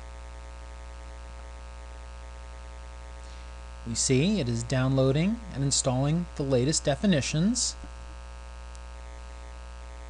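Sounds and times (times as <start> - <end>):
low electrical hum: 0.0 - 10.0
person speaking: 3.8 - 7.9.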